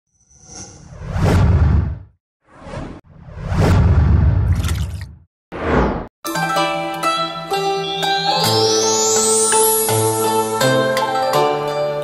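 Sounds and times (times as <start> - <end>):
whoosh: 0.2 - 4.6.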